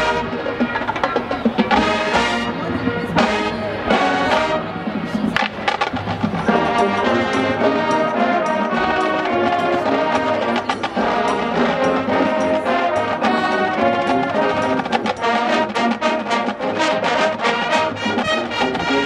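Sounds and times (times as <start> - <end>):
brass chords: 0.0 - 19.0
drumline strokes: 0.0 - 19.0.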